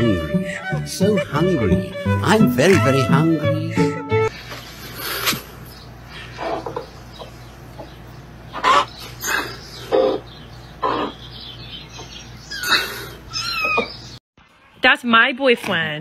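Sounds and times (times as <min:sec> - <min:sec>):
hens clucking and squawking: 0:06.1 - 0:11.4.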